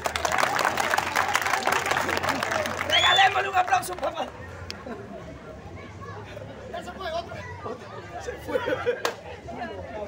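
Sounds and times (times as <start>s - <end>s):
crowd applauding: 0.0s - 4.4s.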